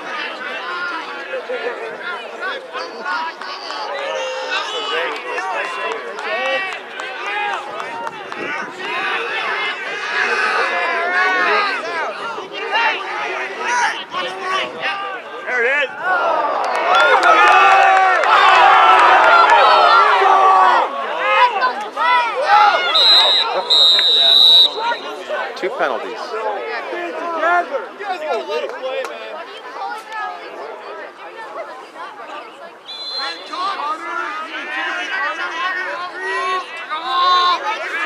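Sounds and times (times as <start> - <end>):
crowd shouting: 0.0 - 38.0
referee's whistle: 22.8 - 25.3, 32.8 - 33.8.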